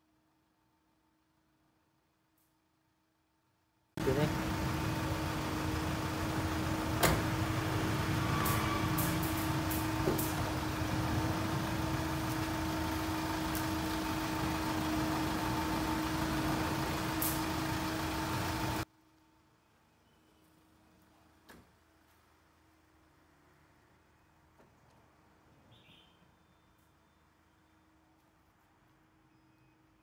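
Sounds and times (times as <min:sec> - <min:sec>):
van engine idling: 0:04.0 - 0:18.9.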